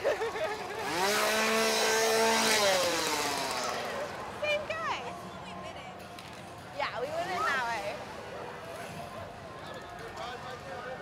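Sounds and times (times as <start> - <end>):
small engine revving: 0.1 - 4.7.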